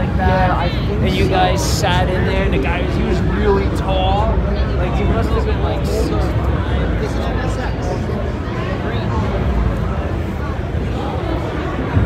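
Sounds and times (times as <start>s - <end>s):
crowd chatter: 0.0s - 12.0s
steady low rumble: 0.0s - 12.0s.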